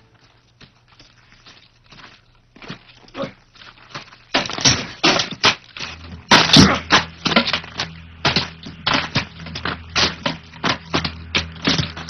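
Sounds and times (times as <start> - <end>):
scuffling: 0.0 - 12.0.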